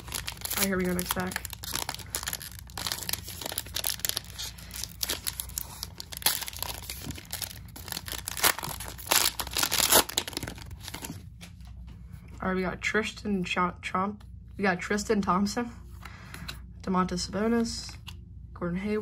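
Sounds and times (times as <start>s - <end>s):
cellophane wrapper crinkling and tearing: 0.0s - 11.3s.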